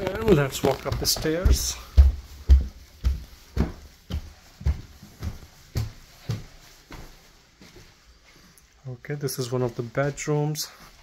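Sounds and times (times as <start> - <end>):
footsteps on carpeted stairs: 0.0 - 11.0.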